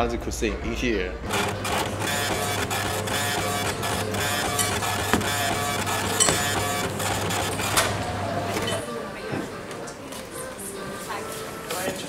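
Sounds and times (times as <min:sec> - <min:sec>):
small motorised machine humming: 0:01.3 - 0:08.8.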